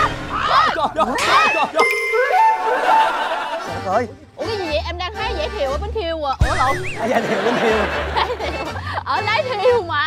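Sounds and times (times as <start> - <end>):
bright ringing ding: 1.8 - 3.2.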